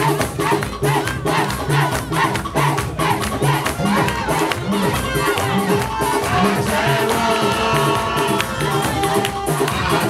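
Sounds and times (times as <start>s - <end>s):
crowd singing and shouting: 0.0s - 10.0s
live church praise music: 0.0s - 10.0s.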